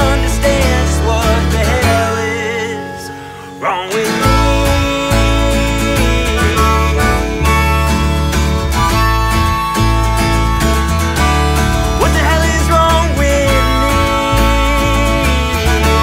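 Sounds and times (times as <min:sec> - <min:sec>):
plucked upright bass: 0:00.0 - 0:02.5, 0:04.2 - 0:16.0
strummed acoustic guitar: 0:00.0 - 0:16.0
harmonica: 0:02.9 - 0:16.0.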